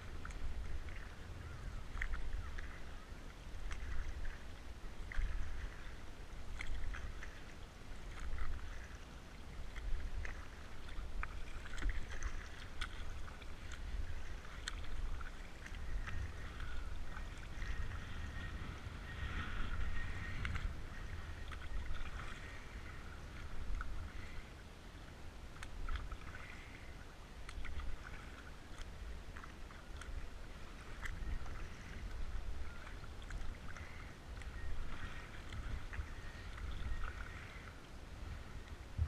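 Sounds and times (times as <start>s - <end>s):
paddle water splashing and dripping: 0.0s - 39.0s
wind rumble on microphone: 0.0s - 39.0s
water drips: 3.6s - 4.4s, 9.7s - 17.8s, 27.5s - 30.2s.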